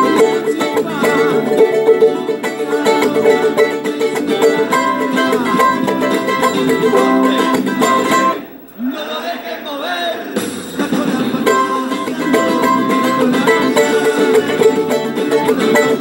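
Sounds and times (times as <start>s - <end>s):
charango strummed: 0.0s - 8.5s, 10.7s - 16.0s.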